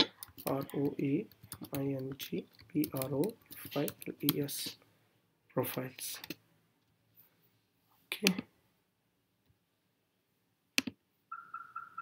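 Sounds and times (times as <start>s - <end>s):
computer mouse click: 10.8s - 11.0s.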